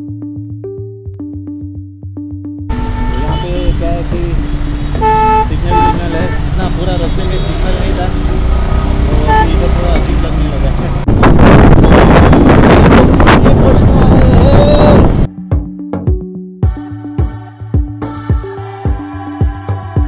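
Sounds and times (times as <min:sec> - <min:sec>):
vehicle horn toots: 0:02.7 - 0:07.8, 0:08.7 - 0:10.0
motorcycle engine: 0:02.7 - 0:13.5
wind buffeting microphone: 0:10.7 - 0:15.3.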